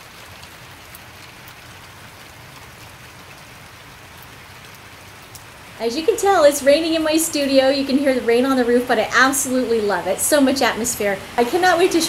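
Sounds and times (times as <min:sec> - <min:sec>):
rain on a roof: 0:00.0 - 0:12.0.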